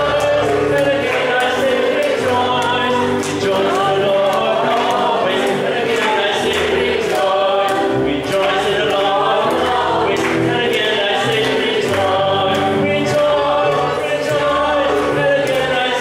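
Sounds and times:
electronic keyboard: 0:00.0 - 0:16.0
man singing: 0:00.0 - 0:16.0
voices singing along: 0:00.0 - 0:16.0.

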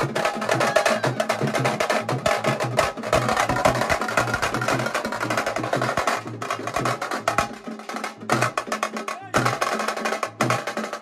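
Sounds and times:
band drums playing fast beat: 0:00.0 - 0:11.0.

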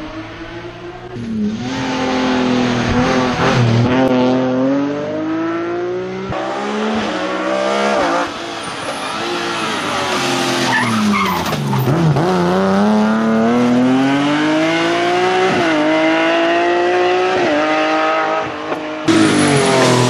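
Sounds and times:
rally car engine accelerating: 0:00.0 - 0:20.0.

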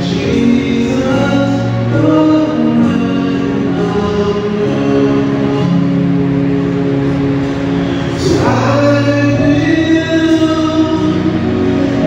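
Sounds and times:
music with singing: 0:00.0 - 0:12.0.

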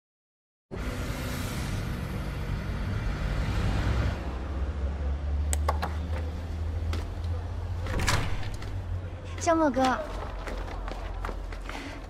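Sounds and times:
passing car rumble and hiss: 0:00.7 - 0:05.5.

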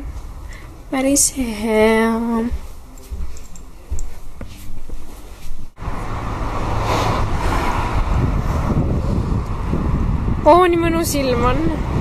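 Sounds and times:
road traffic noise: 0:00.0 - 0:01.6, 0:02.8 - 0:12.0
indoor room sound: 0:00.0 - 0:05.8
wind buffeting microphone: 0:05.7 - 0:12.0.

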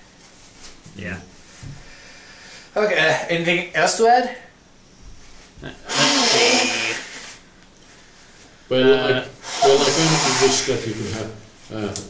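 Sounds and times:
man blowing his nose: 0:05.9 - 0:07.4, 0:09.4 - 0:11.2.

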